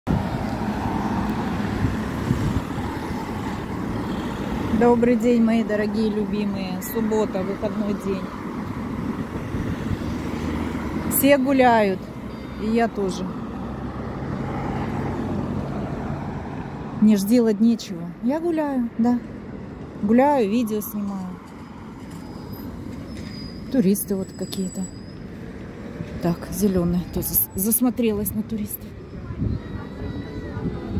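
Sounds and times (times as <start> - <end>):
cars driving past: 0.1 - 30.9
car driving past: 12.0 - 17.0.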